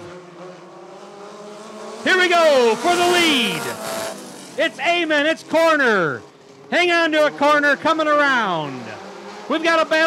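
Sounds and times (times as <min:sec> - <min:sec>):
distant race car engines drone: 0:00.0 - 0:10.0.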